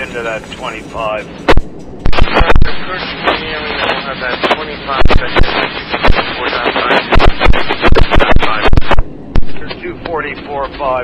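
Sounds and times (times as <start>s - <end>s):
voice over radio: 0.0s - 1.3s, 2.2s - 11.0s
radio static and crackle: 0.0s - 11.0s
sharp loud pops: 1.5s - 9.8s.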